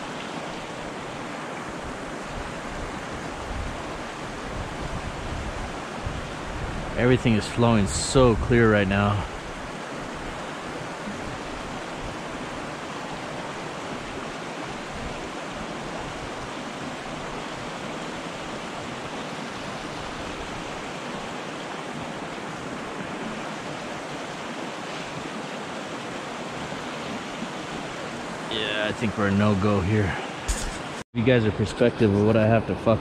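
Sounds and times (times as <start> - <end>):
river water rushing over rocks: 0.0 - 7.0, 8.9 - 31.0.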